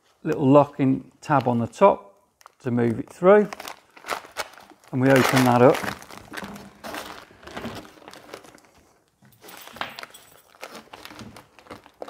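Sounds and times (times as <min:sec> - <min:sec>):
cloth bag rustling and crinkling: 0:03.2 - 0:12.0.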